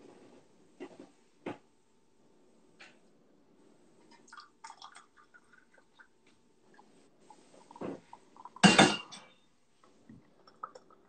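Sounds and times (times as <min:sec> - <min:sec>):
kitchenware clattering: 0:07.8 - 0:09.4
kitchenware clinking on counter: 0:08.6 - 0:09.4.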